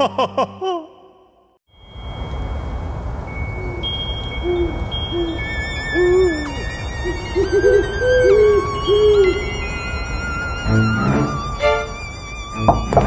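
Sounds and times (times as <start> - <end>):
thin held high tones: 1.8 - 13.0
owl hooting: 3.5 - 13.0.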